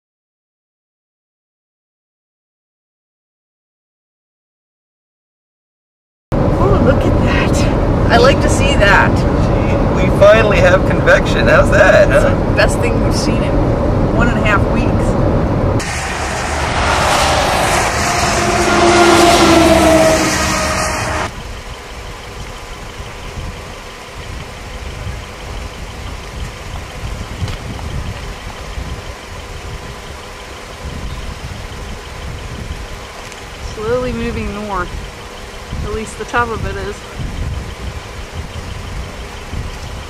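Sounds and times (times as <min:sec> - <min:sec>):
low rumble: 0:06.3 - 0:40.0
road and wind noise in car: 0:06.3 - 0:40.0.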